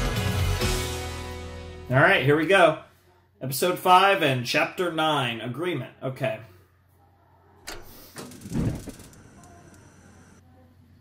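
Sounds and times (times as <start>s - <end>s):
gas stove burner lighting: 7.7s - 10.4s.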